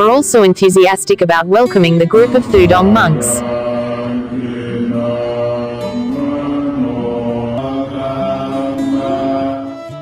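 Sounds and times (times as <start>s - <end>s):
monks chanting in unison: 2.5s - 10.0s.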